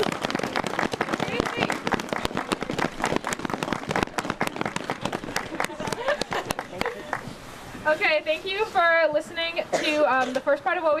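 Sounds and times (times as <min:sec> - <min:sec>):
audience applauding: 0:00.0 - 0:07.3.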